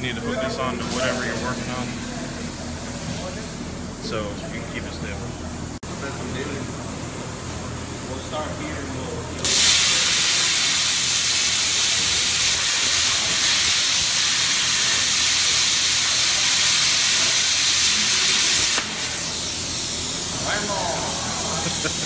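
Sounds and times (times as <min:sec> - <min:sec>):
plasma cutter hissing: 0:09.4 - 0:22.0.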